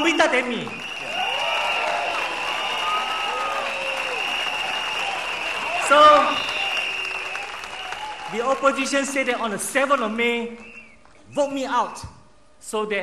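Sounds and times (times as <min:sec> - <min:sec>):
crowd applauding: 0:00.0 - 0:11.2.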